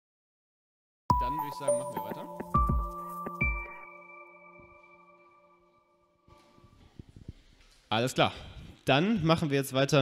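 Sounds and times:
electronic jingle chime tones: 1.1 - 6.0.

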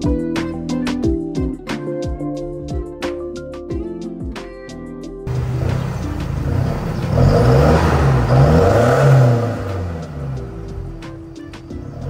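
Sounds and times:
diesel pickup engine revving: 5.3 - 12.0.

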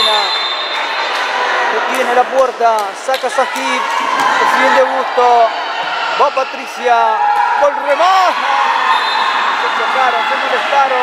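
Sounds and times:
hubbub of people: 0.0 - 11.0.

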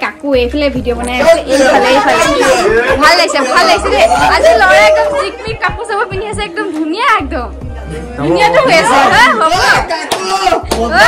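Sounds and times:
many voices chattering: 0.9 - 6.6.

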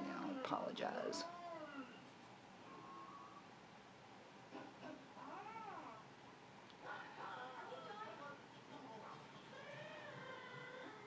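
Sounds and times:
dog whining: 1.4 - 2.1.

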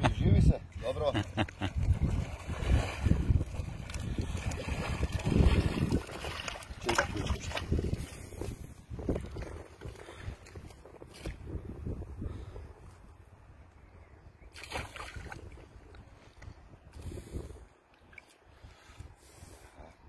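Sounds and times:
wind buffeting microphone: 0.0 - 17.9
water splashing around wading legs: 1.6 - 11.5, 14.5 - 15.6.

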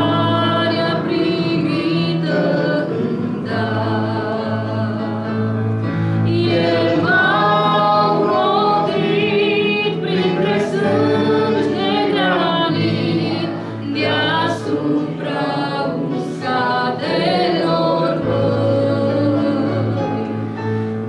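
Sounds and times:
woman singing a hymn: 0.0 - 5.4, 6.3 - 20.5.

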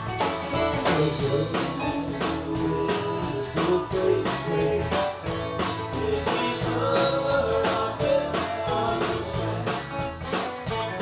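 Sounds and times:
drum kit and percussion: 0.0 - 11.0
electric guitar notes: 0.0 - 11.0.

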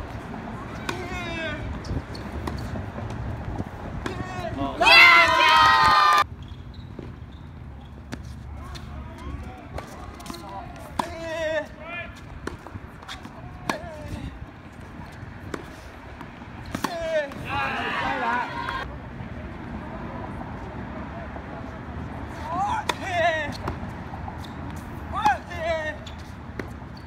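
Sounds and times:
racket hitting tennis ball: 0.8 - 1.4, 9.7 - 17.6, 22.3 - 25.6
tennis ball bouncing on hard court: 0.8 - 4.3, 8.0 - 11.6, 12.2 - 17.4, 22.8 - 27.0
person shouting: 4.8 - 6.2, 17.0 - 18.8.

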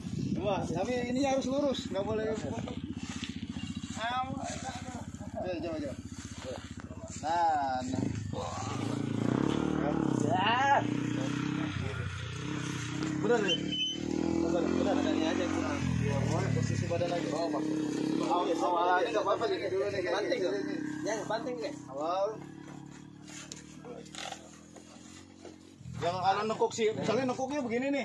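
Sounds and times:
scuffs and rustles on dry grass: 0.0 - 9.1
motorcycle engine idling: 0.0 - 27.6.

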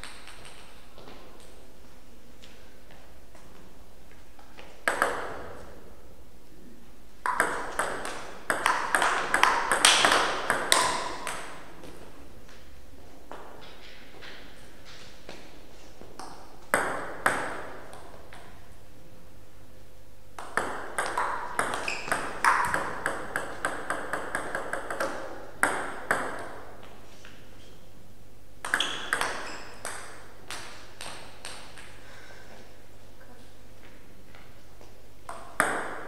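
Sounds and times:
table tennis ball hits: 4.8 - 5.7, 7.2 - 12.0, 16.2 - 18.6, 20.4 - 26.9, 28.6 - 32.0, 35.3 - 36.0.

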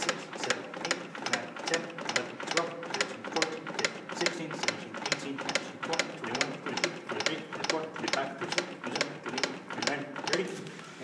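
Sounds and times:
cpr manikin chest clicking: 0.0 - 10.9.

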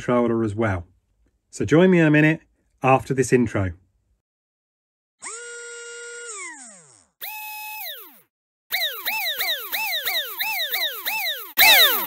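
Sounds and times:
falling electronic swoops: 8.8 - 12.0.

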